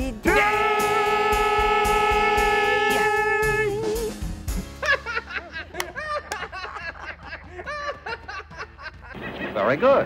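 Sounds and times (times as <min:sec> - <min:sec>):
woman laughing: 0:04.8 - 0:09.2.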